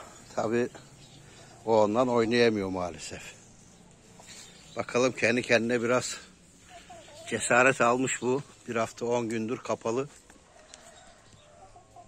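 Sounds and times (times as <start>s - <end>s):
chicken calling: 6.6s - 8.2s.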